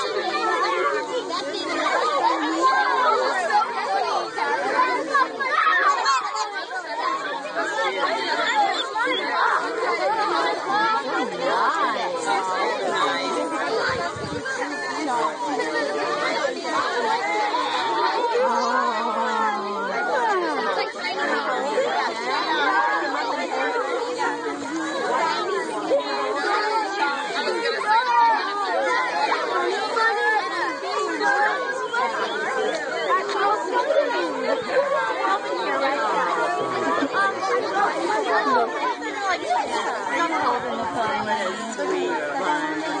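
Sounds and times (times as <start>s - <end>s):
overlapping chatter of voices: 0.0s - 43.0s.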